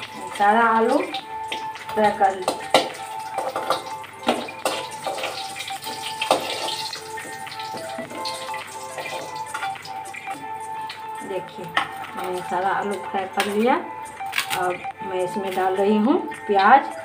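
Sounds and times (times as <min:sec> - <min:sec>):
background music with held tone: 0:00.0 - 0:17.0
oil sizzling: 0:00.0 - 0:17.0.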